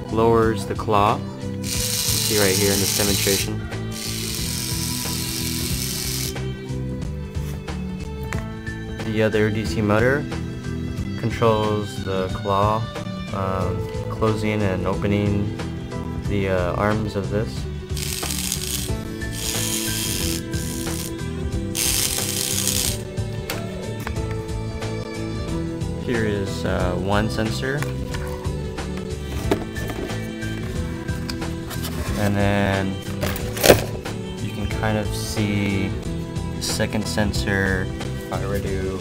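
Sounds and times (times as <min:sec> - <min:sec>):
background music: 0:00.0 - 0:39.0
electric motor whirring: 0:01.6 - 0:06.5, 0:17.9 - 0:23.1.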